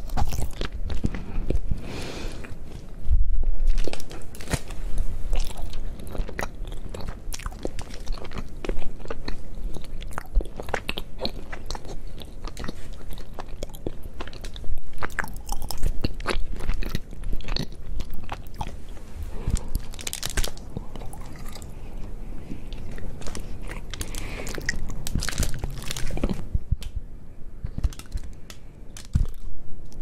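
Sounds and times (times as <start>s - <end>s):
chocolate bar bite and chewing: 0.0s - 1.7s, 3.7s - 18.8s, 19.4s - 26.4s.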